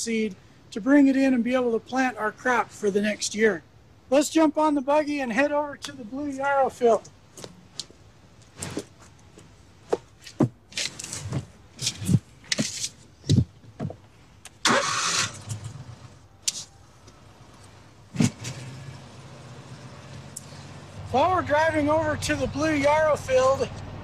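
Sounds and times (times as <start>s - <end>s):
vehicle engine humming: 6.2s - 24.0s
knocks and clunks of climbing in: 8.5s - 14.2s, 18.1s - 18.7s.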